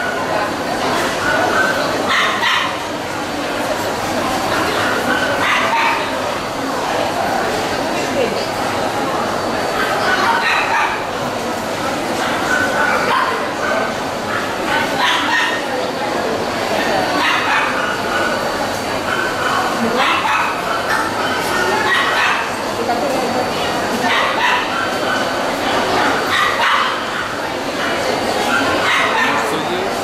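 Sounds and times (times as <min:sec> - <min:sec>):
people talking: 0:00.0 - 0:30.0
dog barking: 0:01.2 - 0:02.9, 0:04.8 - 0:06.1, 0:09.8 - 0:11.1, 0:12.2 - 0:15.7, 0:16.8 - 0:22.6, 0:24.0 - 0:29.6.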